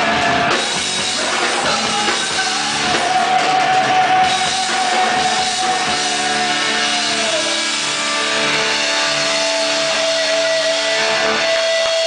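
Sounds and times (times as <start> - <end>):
rock band sustained note: 0.0 - 12.0.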